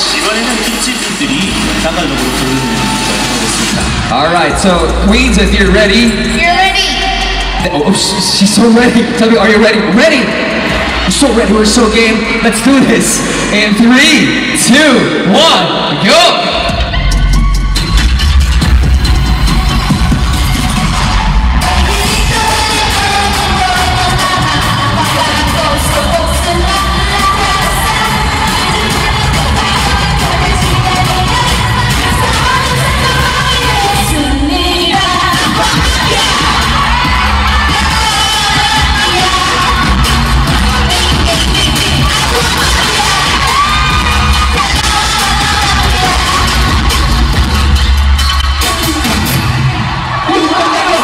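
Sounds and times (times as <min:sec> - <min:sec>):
karaoke backing track with bass: 0:00.0 - 0:50.2
crowd cheering: 0:00.0 - 0:51.0
women singing a pop song: 0:21.5 - 0:49.5.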